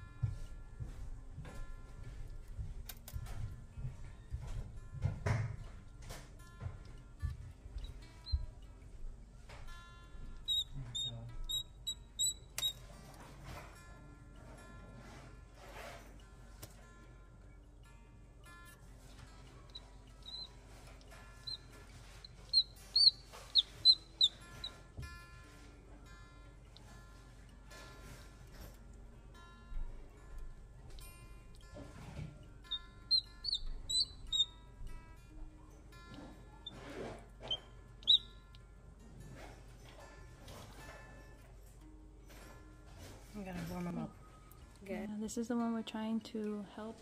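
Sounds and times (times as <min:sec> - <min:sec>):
soft background music: 0:00.0 - 0:47.0
chick peeping: 0:10.5 - 0:12.8, 0:19.7 - 0:20.5, 0:22.2 - 0:24.8, 0:32.7 - 0:34.5, 0:38.0 - 0:38.3.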